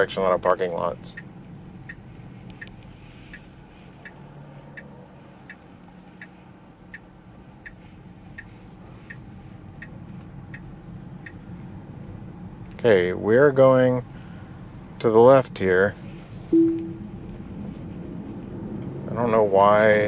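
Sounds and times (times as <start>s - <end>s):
turn signal ticking: 0.1s - 12.8s, 14.6s - 15.1s
low cabin hum: 16.2s - 17.9s.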